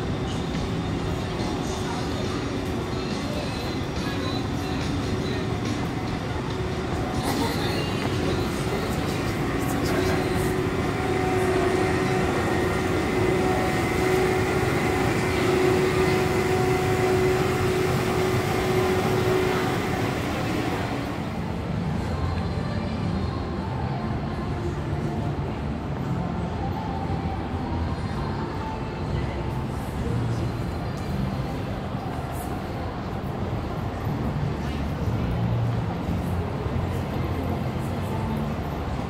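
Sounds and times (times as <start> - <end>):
murmur of voices: 0.0 - 39.0
train rumbling past: 0.0 - 39.0.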